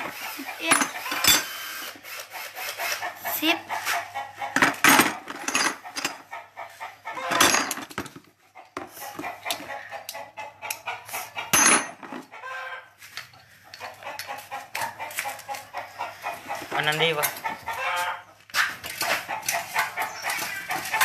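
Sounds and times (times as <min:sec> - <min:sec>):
chickens clucking: 0:00.0 - 0:01.3, 0:02.4 - 0:21.0.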